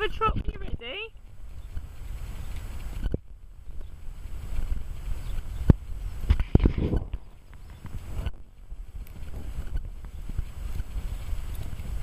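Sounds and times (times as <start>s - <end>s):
horse hooves thudding on ground: 0.0s - 12.0s
wind rumbling on microphone: 0.0s - 12.0s.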